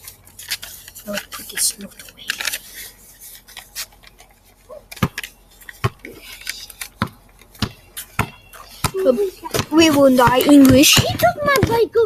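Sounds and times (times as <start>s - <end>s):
basketball bouncing on pavement: 4.7s - 6.2s, 6.9s - 12.0s.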